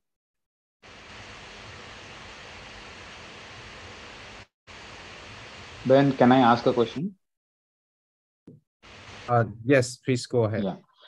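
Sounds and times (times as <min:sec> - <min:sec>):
microphone background hiss: 0:01.0 - 0:07.0, 0:08.9 - 0:10.0.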